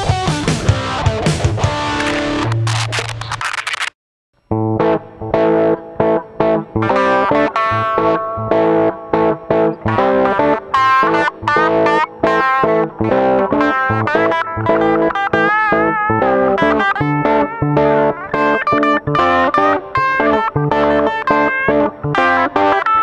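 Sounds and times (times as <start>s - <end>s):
distorted electric guitar riff: 0.0s - 3.7s, 4.4s - 23.0s.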